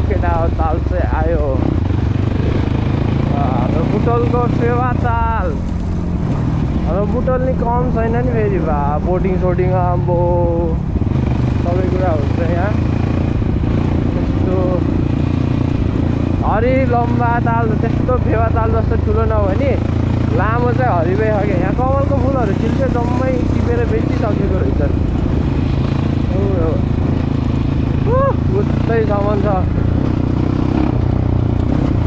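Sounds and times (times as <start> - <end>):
person talking: 0.0 - 1.7, 3.2 - 5.7, 6.8 - 10.8, 11.6 - 12.8, 14.1 - 14.9, 16.4 - 25.0, 26.3 - 26.9, 28.0 - 29.9
dirt bike engine rumbling: 0.0 - 32.0.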